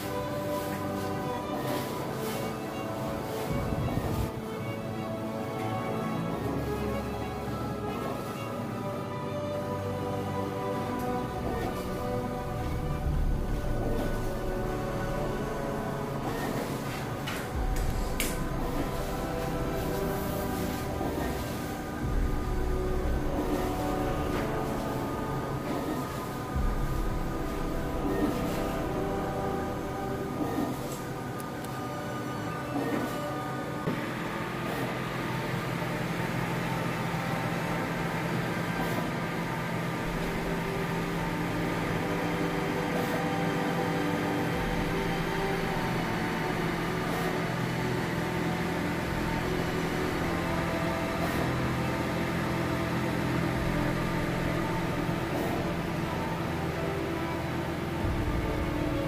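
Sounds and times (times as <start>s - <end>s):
printer motors and fans humming: 0.0s - 59.0s.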